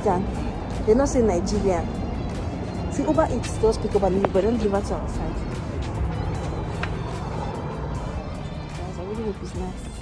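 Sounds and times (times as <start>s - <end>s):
car road rumble: 0.0s - 10.0s.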